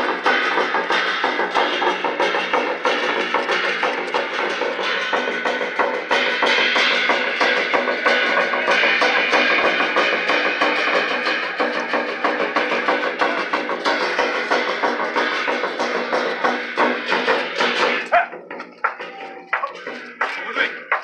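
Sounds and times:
clashing cymbals: 0:00.0 - 0:18.1
drum beaten in fast rhythm: 0:00.0 - 0:21.0.

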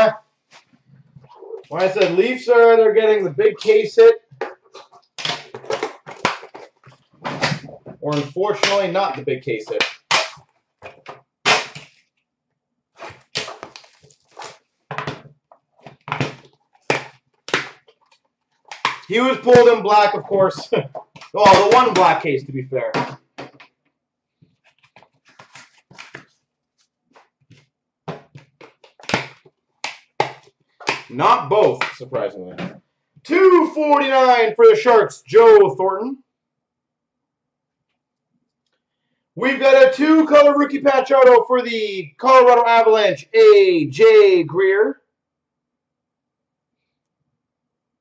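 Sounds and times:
trading cards rustling: 0:24.5 - 0:31.1.

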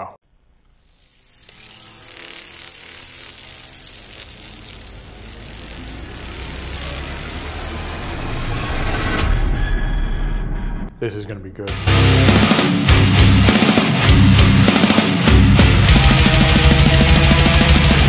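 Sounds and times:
noisy metal music swell: 0:11.7 - 0:18.0.

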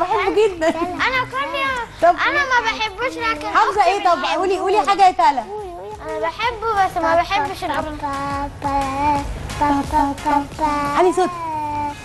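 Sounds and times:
girl singing held notes: 0:07.0 - 0:12.0.

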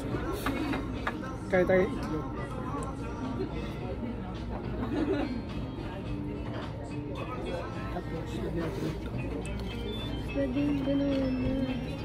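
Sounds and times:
background music: 0:00.0 - 0:12.0
faint indistinct voices: 0:00.0 - 0:12.0.

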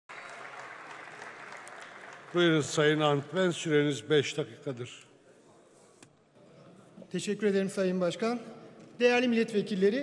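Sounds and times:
faint applause: 0:00.1 - 0:02.8.

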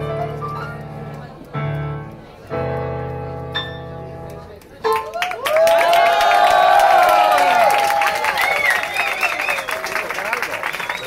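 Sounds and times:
people clapping: 0:04.3 - 0:11.0
crowd cheering and whooping: 0:05.1 - 0:11.0.

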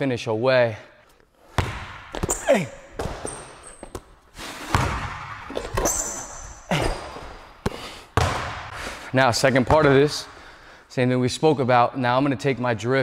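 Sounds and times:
sneakers squeaking on floor: 0:01.5 - 0:08.7
basketball bouncing on hardwood: 0:01.6 - 0:04.1, 0:04.7 - 0:06.0, 0:07.2 - 0:08.7.

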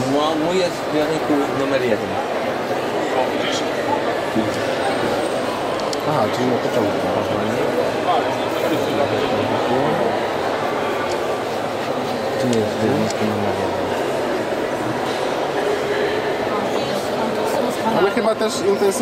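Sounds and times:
crowd chatter: 0:00.0 - 0:19.0
man talking: 0:12.4 - 0:14.0.

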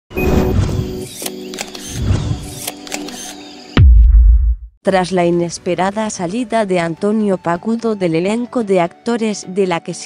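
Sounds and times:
sharp clicks: 0:01.1 - 0:03.4
loud deep boom: 0:03.8 - 0:04.7.

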